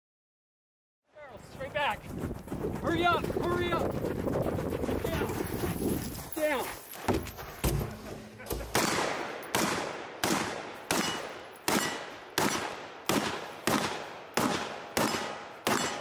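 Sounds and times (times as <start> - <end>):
rifle shots echoing: 8.7 - 16.0.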